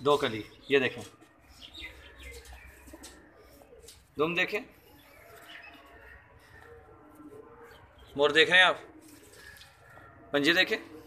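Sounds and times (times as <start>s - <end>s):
faint pigeons cooing: 0.0s - 11.0s.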